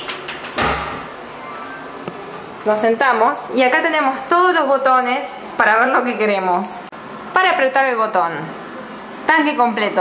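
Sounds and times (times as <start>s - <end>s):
toilet stall door thud: 0.0s - 1.2s.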